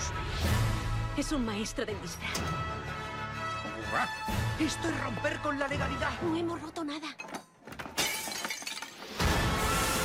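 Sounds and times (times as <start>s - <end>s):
glass shattering: 7.8s - 9.5s.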